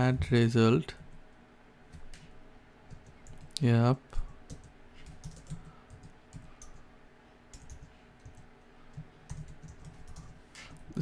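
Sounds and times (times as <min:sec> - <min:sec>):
computer keyboard typing: 0:02.9 - 0:03.6, 0:04.5 - 0:06.8, 0:07.5 - 0:10.8.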